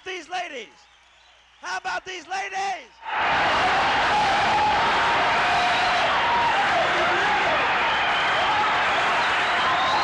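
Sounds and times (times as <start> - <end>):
audience applauding and cheering: 3.0 - 10.0.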